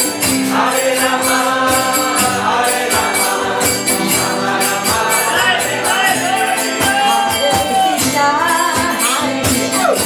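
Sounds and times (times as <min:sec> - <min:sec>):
jingling hand percussion: 0:00.0 - 0:10.0
strummed acoustic guitar: 0:00.0 - 0:10.0
voices chanting: 0:00.4 - 0:08.0.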